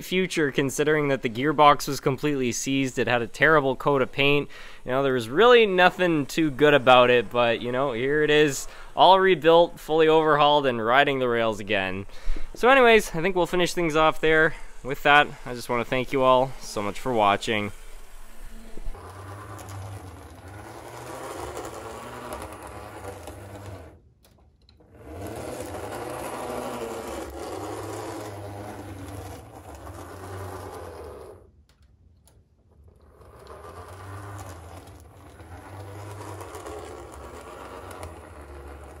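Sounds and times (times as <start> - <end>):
model streetcar motor whirring: 0.0 - 24.0, 24.7 - 31.5, 32.7 - 39.0.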